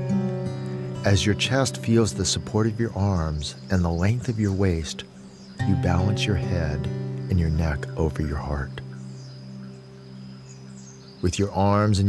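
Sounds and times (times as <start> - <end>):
ambient drone music: 0.0 - 12.0.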